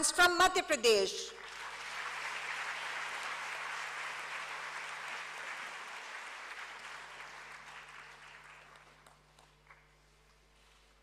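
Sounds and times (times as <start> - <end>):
audience applauding: 1.4 - 10.1.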